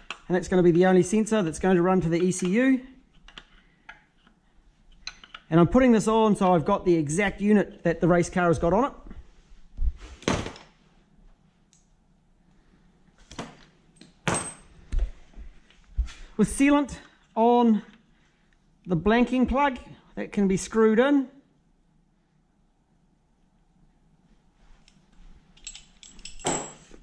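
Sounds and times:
tools clattering: 0:13.3 - 0:14.8, 0:25.6 - 0:27.0
metal tools clinking: 0:25.6 - 0:27.0.

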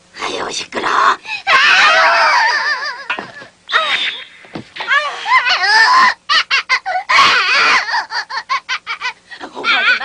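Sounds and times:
cartoon voices squealing: 0:01.5 - 0:03.1, 0:03.7 - 0:08.1
cartoon laughter bursts: 0:01.7 - 0:10.0.

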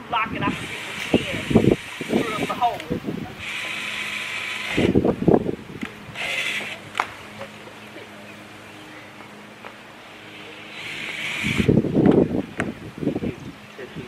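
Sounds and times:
muffled voices: 0:00.1 - 0:03.7, 0:05.9 - 0:11.0
power drill driving screws: 0:00.5 - 0:05.0, 0:06.1 - 0:06.8, 0:10.6 - 0:11.8.

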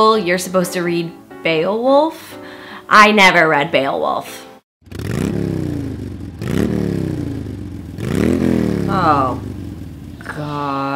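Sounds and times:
engine revving: 0:04.8 - 0:10.9.

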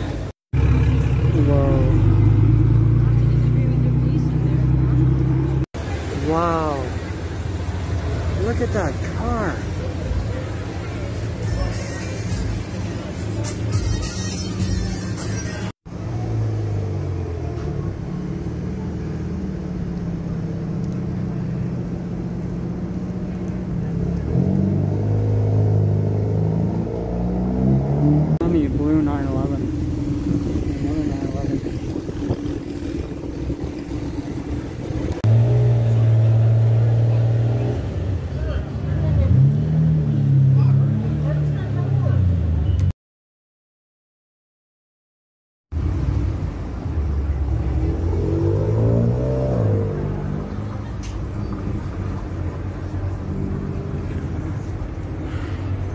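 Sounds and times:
car engines revving: 0:00.0 - 0:13.8, 0:14.4 - 0:42.9, 0:45.8 - 0:55.9.

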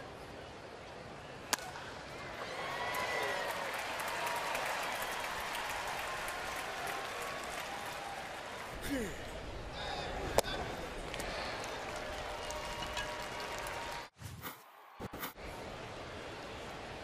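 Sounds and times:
crowd cheering and applauding: 0:02.3 - 0:08.8, 0:11.0 - 0:15.1.

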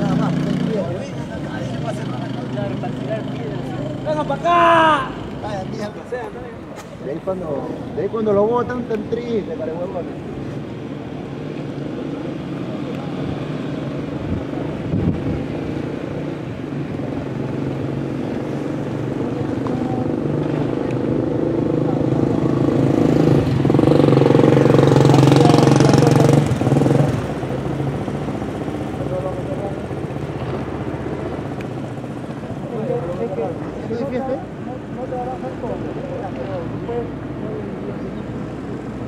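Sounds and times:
truck and bus engines idling: 0:00.0 - 0:39.0.

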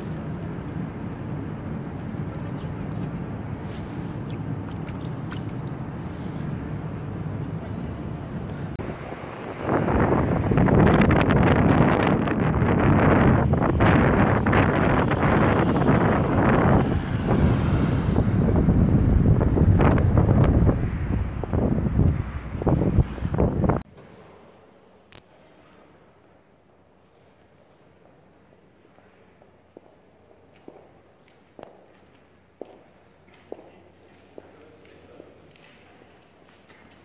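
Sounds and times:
wind buffeting microphone: 0:00.0 - 0:23.9.

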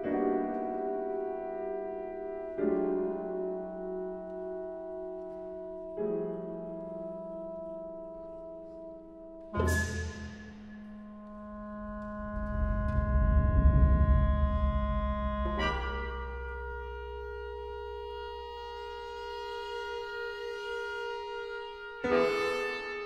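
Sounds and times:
low rumble: 0:11.7 - 0:17.5
chamber ensemble playing: 0:14.7 - 0:23.0.

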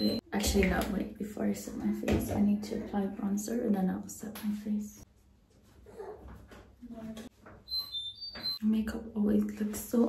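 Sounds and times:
woman's voice: 0:00.0 - 0:05.1, 0:08.6 - 0:10.0
high-pitched squeak: 0:07.6 - 0:08.6.

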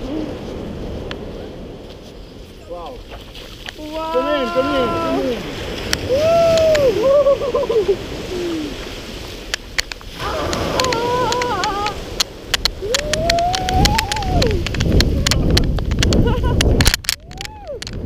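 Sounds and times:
surf washing onto beach: 0:00.0 - 0:18.0
wind buffeting microphone: 0:00.0 - 0:18.0
people crying out: 0:03.9 - 0:05.5, 0:06.1 - 0:08.6, 0:10.2 - 0:12.0.

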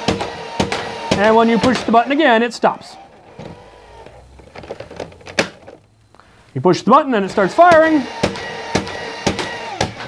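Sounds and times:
toy blaster motor hum: 0:00.1 - 0:05.9, 0:07.4 - 0:10.0
toy blaster firing darts: 0:07.8 - 0:10.0.

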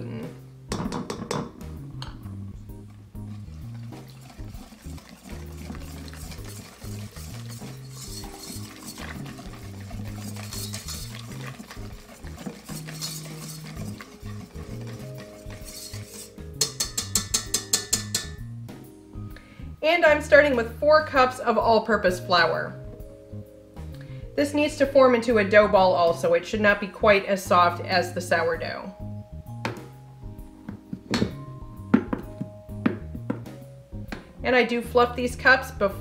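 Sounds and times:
background music: 0:00.0 - 0:36.0
whisk scraping metal bowl: 0:02.7 - 0:18.5
whisk clicking against bowl: 0:03.3 - 0:18.4.

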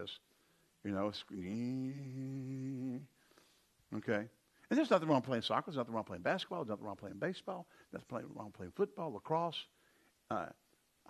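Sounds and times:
man holding a long sung note: 0:00.9 - 0:03.1.

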